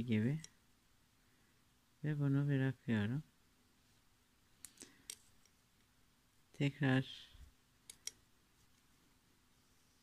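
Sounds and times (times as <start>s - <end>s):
faint plastic shuttle clicks: 7.8s - 8.2s.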